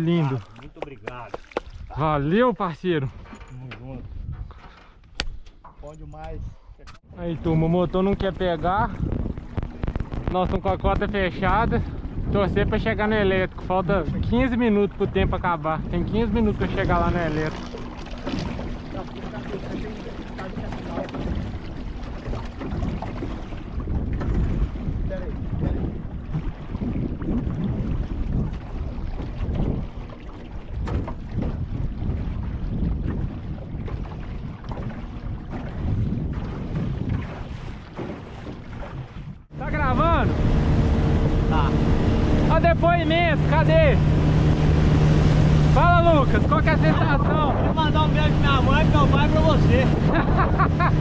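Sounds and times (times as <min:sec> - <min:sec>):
water slapping boat hull: 0:00.0 - 0:51.0
wind buffeting microphone: 0:00.0 - 0:51.0
outboard motor running: 0:07.1 - 0:51.0.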